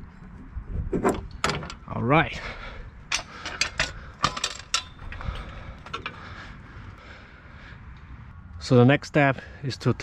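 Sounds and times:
low outdoor rumble: 0.0s - 10.0s
handling knocks and clicks on metal: 3.1s - 6.2s.

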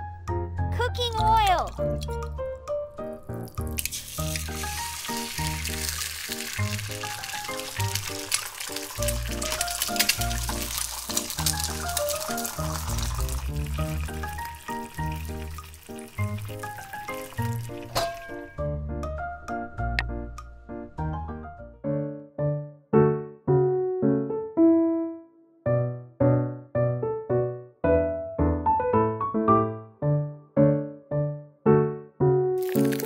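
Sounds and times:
bouncy background music: 0.0s - 6.0s, 11.5s - 21.8s
egg sizzling in hot oil: 3.3s - 18.5s, 32.6s - 33.0s.

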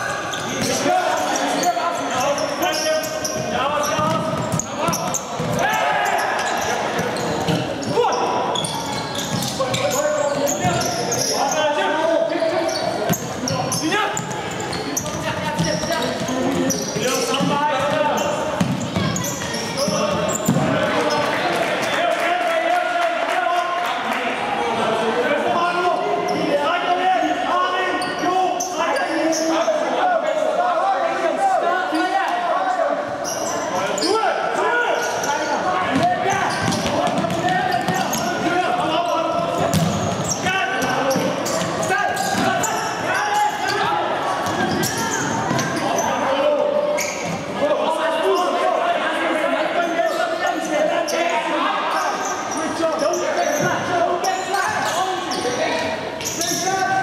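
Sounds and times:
voices calling out: 0.0s - 23.3s, 24.9s - 57.0s.

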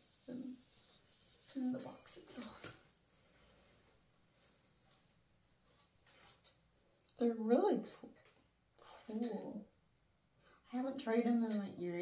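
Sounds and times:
faint handling sound: 0.0s - 7.2s.

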